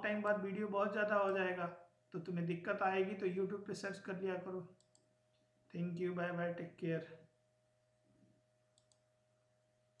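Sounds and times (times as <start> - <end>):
faint steady hum: 0.0 - 10.0
computer mouse clicks: 4.8 - 5.4, 8.7 - 9.1.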